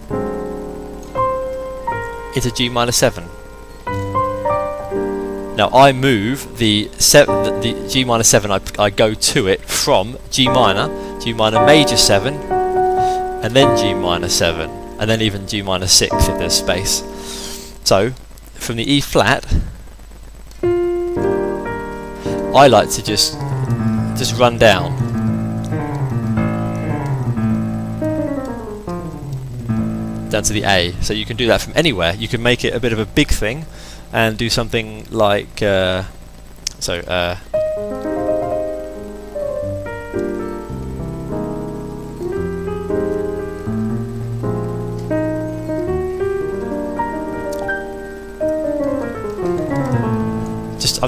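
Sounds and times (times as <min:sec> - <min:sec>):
digital piano jazz chords: 0:00.0 - 0:18.3, 0:20.4 - 0:51.0.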